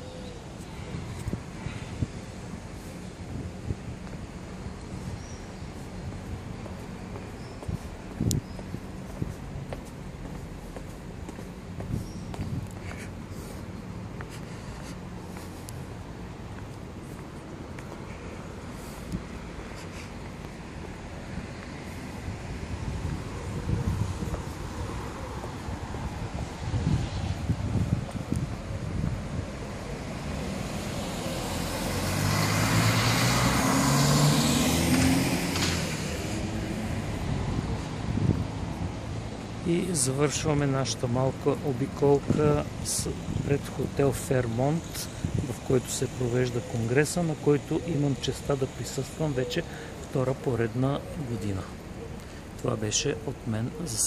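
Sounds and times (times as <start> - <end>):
vehicle driving past: 30.0 - 38.1.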